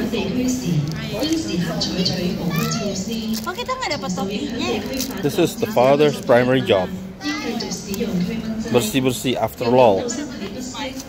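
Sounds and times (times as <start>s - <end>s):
young voices chattering: 0.0s - 11.0s.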